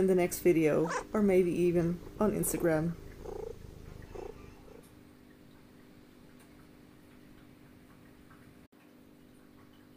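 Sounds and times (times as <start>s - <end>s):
cat purring: 0.7s - 4.9s
cat calls: 3.1s - 4.8s.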